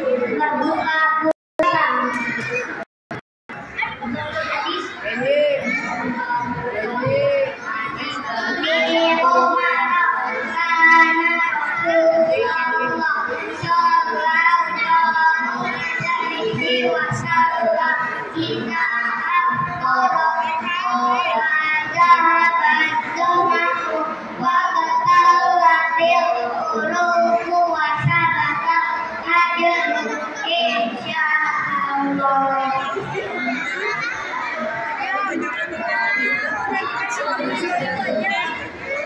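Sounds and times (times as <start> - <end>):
children singing together: 0.0 - 2.8, 3.7 - 39.0.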